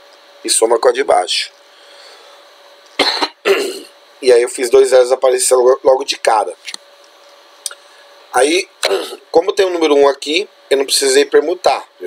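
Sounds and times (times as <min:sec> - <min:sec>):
person coughing: 0:03.0 - 0:04.0, 0:08.8 - 0:09.2.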